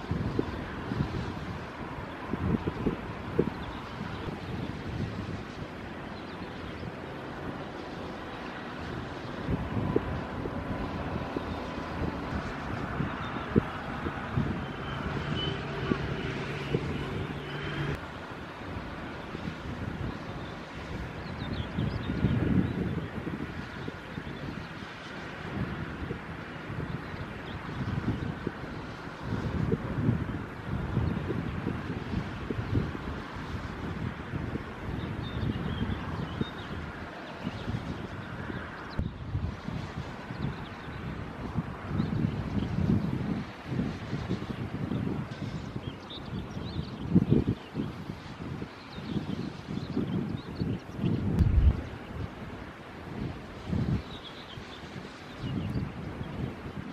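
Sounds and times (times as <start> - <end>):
wind buffeting microphone: 0.0 - 56.9
ship engine drone: 6.8 - 19.3.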